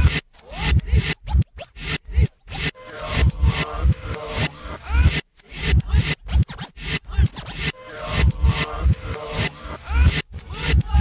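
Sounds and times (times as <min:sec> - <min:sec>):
reversed hip-hop track: 0:00.0 - 0:11.0.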